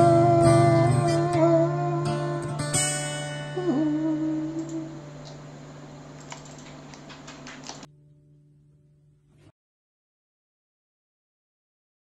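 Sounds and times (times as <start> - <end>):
steady low hum: 0.0 - 7.9.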